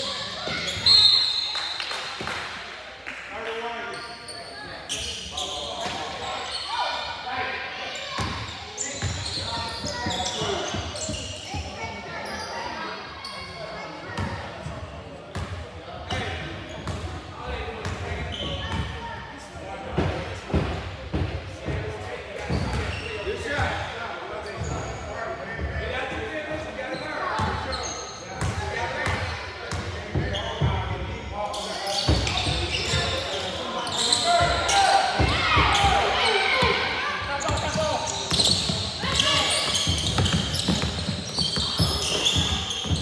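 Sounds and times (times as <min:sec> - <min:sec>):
voices shouting in a hall: 0:00.0 - 0:14.6, 0:31.4 - 0:43.0.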